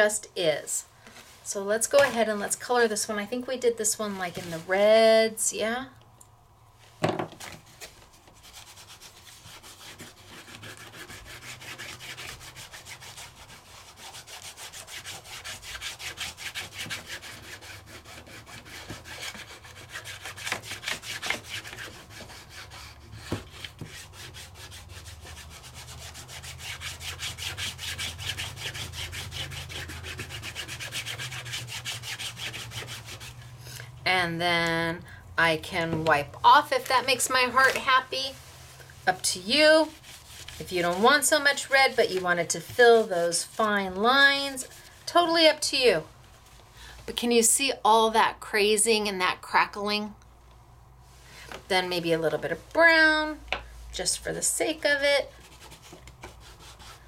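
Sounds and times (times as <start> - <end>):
ink pad rubbing on textured card: 8.4 - 33.4, 36.5 - 38.7, 39.4 - 44.8.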